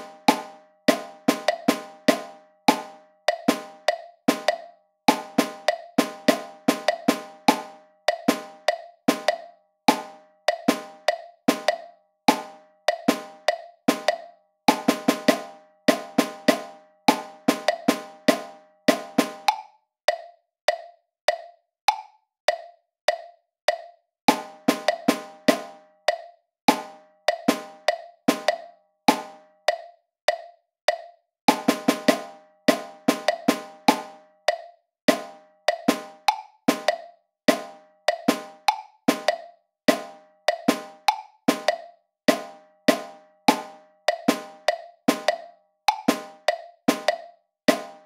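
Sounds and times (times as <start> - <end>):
drum playing rhythm: 0.0 - 48.0
metronome clicking: 0.0 - 48.0.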